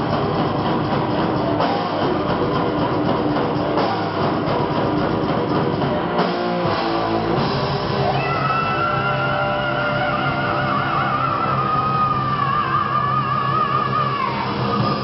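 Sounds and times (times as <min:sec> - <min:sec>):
distorted electric guitars: 0:00.0 - 0:15.0
drum kit: 0:00.0 - 0:15.0.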